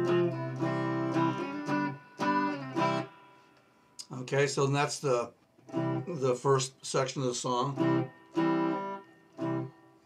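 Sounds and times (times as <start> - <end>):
electric guitar chords: 0.0 - 3.7, 5.6 - 6.3, 7.7 - 10.0.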